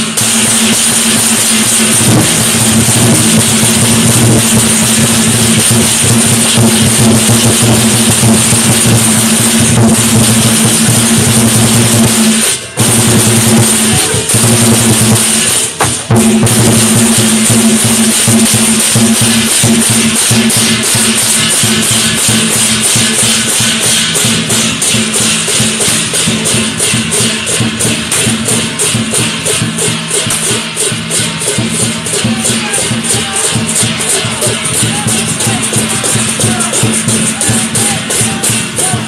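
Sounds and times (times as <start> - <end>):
crash cymbals: 0.0 - 39.0
drums beaten fast: 0.0 - 39.0.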